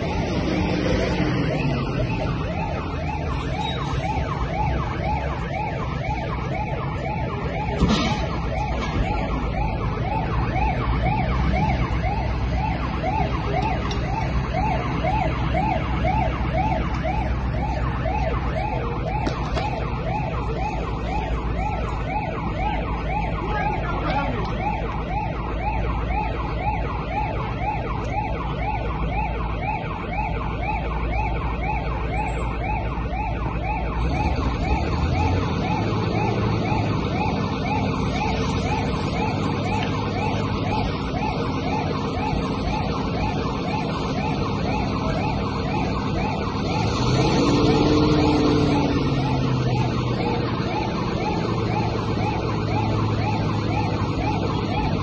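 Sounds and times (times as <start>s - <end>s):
siren yelping: 0.0s - 55.0s.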